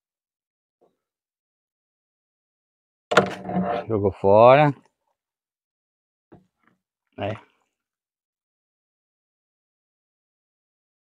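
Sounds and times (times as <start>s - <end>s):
man talking: 3.8s - 4.8s, 7.2s - 7.4s.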